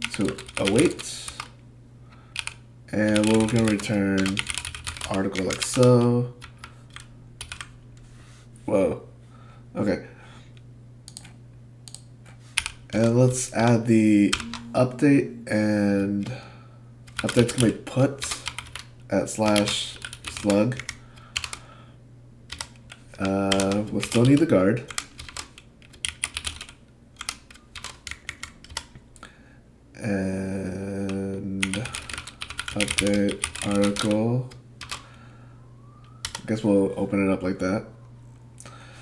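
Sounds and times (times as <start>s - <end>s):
computer keyboard keystrokes: 0.0s - 1.5s, 2.4s - 7.8s, 11.1s - 13.1s, 17.1s - 21.6s, 22.5s - 29.0s, 31.6s - 34.2s.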